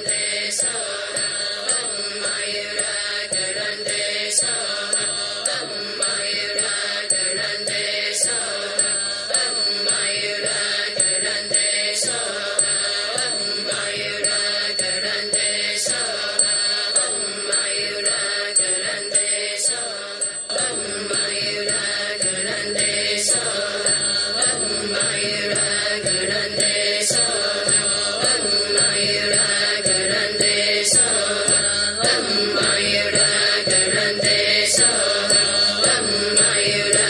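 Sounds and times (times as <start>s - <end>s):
mantra chanting: 0.0s - 37.0s.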